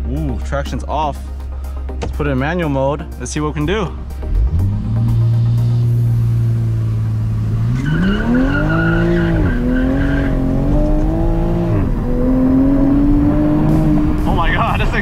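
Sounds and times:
car engine revving: 0:03.9 - 0:15.0.

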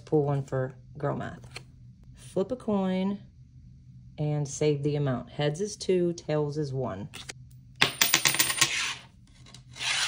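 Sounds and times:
coin bouncing on wooden table: 0:07.8 - 0:08.9.

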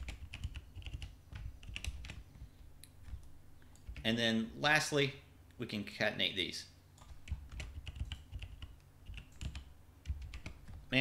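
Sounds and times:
typing on computer keyboard: 0:00.0 - 0:02.3, 0:03.0 - 0:04.1, 0:07.0 - 0:10.9.

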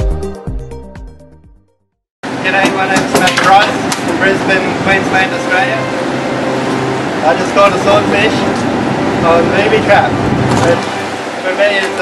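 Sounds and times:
boat engine humming: 0:02.2 - 0:12.0
men talking: 0:02.4 - 0:06.1, 0:07.0 - 0:12.0.

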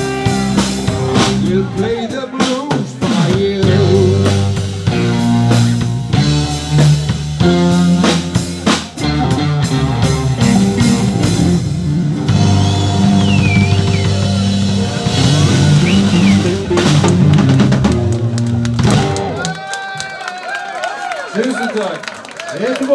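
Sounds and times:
bass guitar: 0:00.0 - 0:19.6
drum kit: 0:00.0 - 0:19.6
electric guitars: 0:00.0 - 0:19.6
crowd voices: 0:00.0 - 0:22.9.

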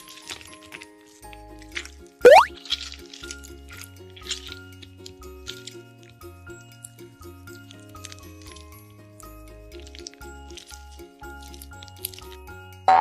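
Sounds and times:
children's background music: 0:00.0 - 0:13.0
rising whistle sound effect: 0:02.3 - 0:02.5.

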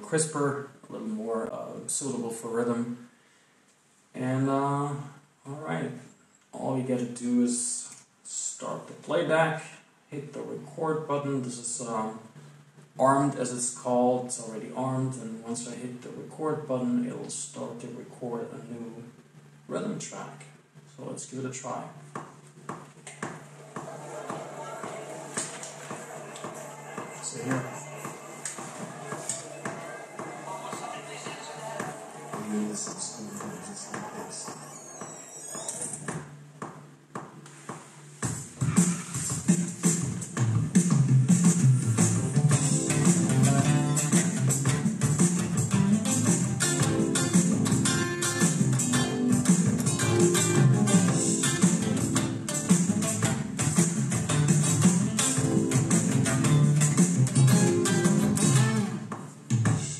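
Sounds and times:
music track playback: 0:20.7 - 0:59.9
electric guitar strumming chords: 0:42.1 - 0:59.1.

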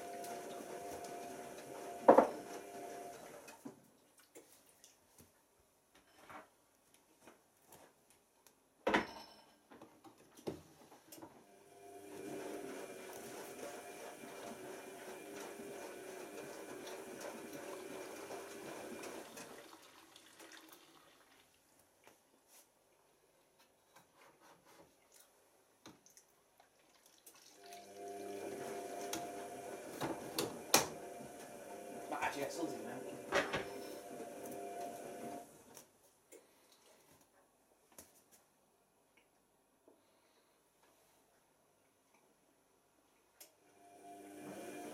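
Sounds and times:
washing machine running: 0:00.0 - 0:03.6, 0:11.5 - 0:20.9, 0:27.5 - 0:35.7, 0:43.7 - 0:44.9.

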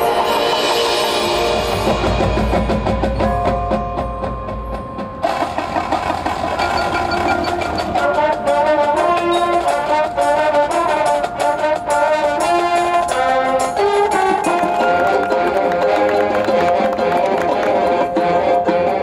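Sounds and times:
marching band playing: 0:00.0 - 0:19.0
percussion rhythm: 0:00.0 - 0:19.0
brass chords: 0:07.6 - 0:19.0.

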